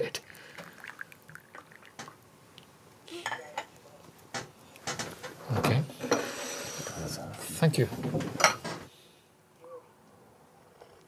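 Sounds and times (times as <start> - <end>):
tea pouring into cup: 0.0 - 2.3.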